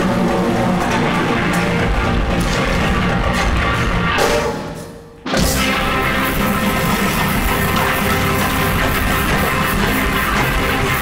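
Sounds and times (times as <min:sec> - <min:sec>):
live rock band playing: 0:00.8 - 0:11.0
sustained cymbal wash: 0:03.8 - 0:11.0.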